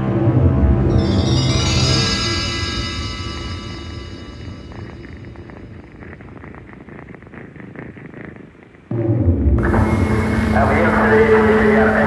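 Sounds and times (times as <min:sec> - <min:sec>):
low rumbling drone: 0:00.0 - 0:08.3, 0:08.9 - 0:12.0.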